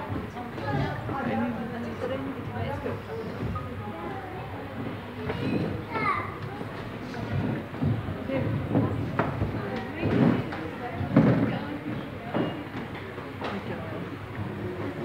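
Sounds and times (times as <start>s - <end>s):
chatter of children and adults: 0.0s - 15.0s
high child's voice: 5.4s - 6.7s.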